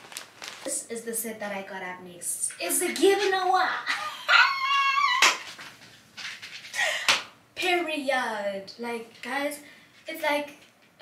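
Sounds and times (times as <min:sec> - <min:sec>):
woman squealing: 0:03.9 - 0:05.5.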